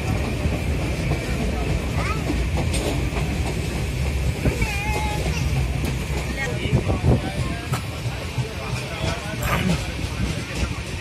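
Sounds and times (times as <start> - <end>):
train wheels rumbling on rails: 0.0 - 11.0.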